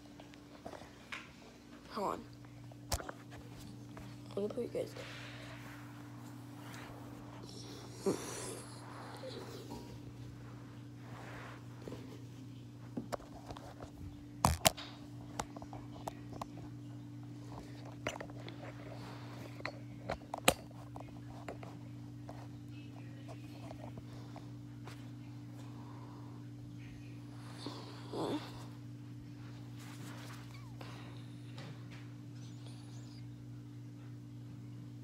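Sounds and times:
low electrical hum: 0.0 - 35.0.

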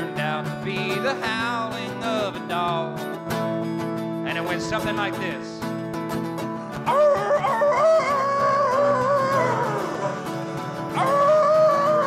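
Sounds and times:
man singing: 0.0 - 3.2, 4.2 - 5.7, 8.4 - 12.0
acoustic guitar strumming: 0.0 - 12.0.

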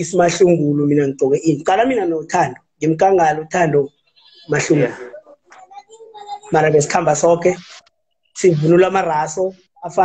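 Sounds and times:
man talking: 0.0 - 5.4, 6.4 - 10.0.

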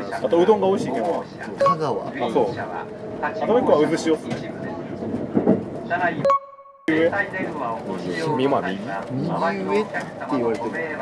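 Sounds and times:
people talking in low voices: 6.9 - 11.0.

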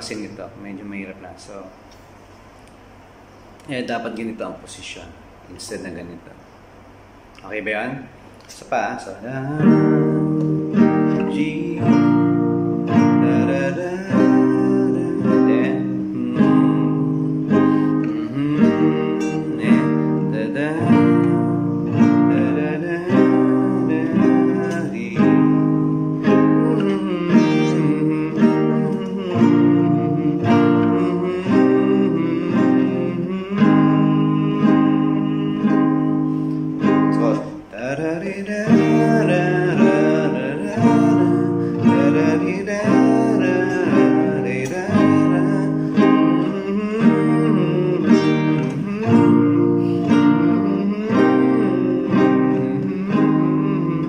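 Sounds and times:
classical guitar chords: 8.0 - 54.0.

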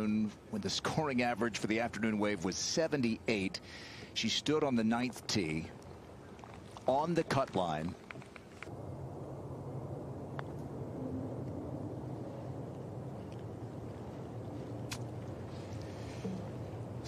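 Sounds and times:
low rumble: 8.6 - 17.0.

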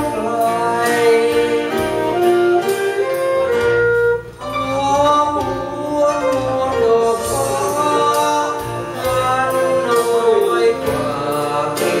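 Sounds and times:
man singing into a microphone: 0.0 - 3.5, 4.4 - 12.0
musical accompaniment: 0.0 - 12.0
saxophone: 0.0 - 12.0.

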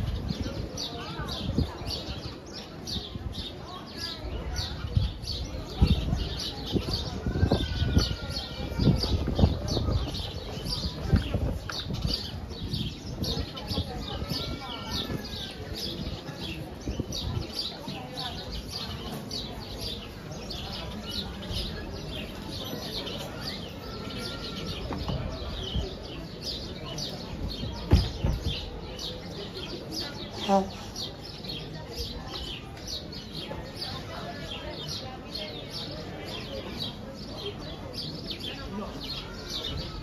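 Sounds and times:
faint voices of passersby: 0.0 - 40.0
small birds chirping: 0.0 - 40.0.

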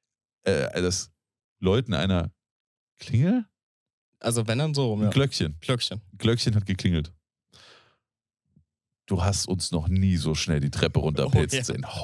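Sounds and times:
faint breath near microphone: 7.5 - 8.0.

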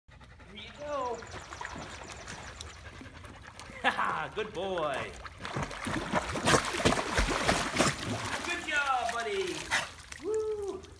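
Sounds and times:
water splashing: 0.6 - 10.9.

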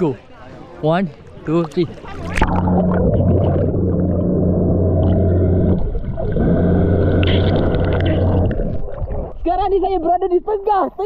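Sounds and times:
water rushing: 1.5 - 10.0
underwater motor hum: 2.0 - 9.5.

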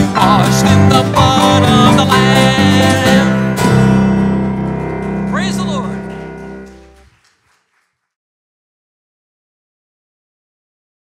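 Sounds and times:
electric bass: 0.0 - 7.0
acoustic guitar: 0.0 - 7.1.

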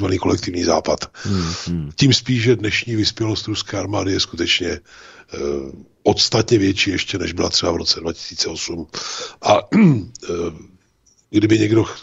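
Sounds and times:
man saying a word: 1.3 - 2.0
man clearing his throat: 9.7 - 10.1.

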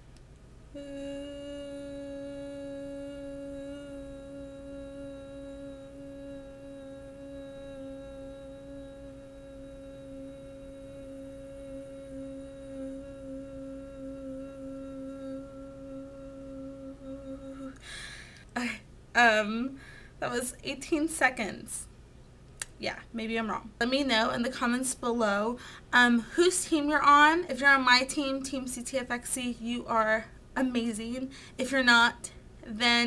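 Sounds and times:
woman humming long low note: 0.7 - 18.0.

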